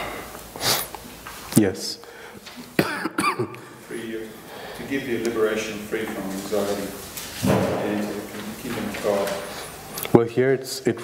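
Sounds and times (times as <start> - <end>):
person coughing: 2.8 - 3.7.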